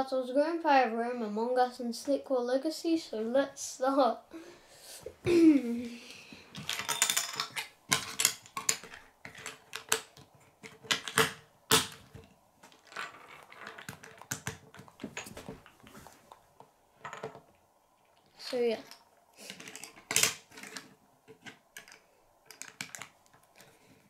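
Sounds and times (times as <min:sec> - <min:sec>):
plastic bricks clicking together: 0:06.6 - 0:15.0, 0:18.8 - 0:23.7.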